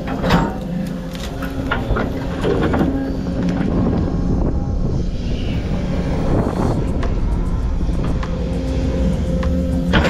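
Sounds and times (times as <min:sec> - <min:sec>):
diesel engine running: 0:00.0 - 0:10.0.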